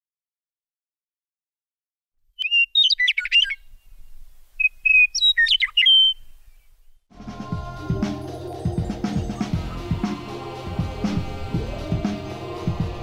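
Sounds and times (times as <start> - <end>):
songbird singing: 2.3 - 13.0.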